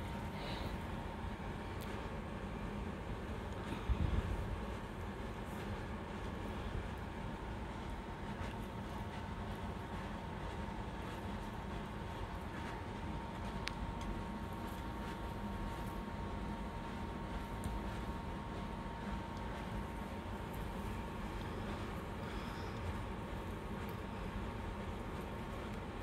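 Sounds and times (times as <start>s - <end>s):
low room rumble: 0.0s - 26.0s.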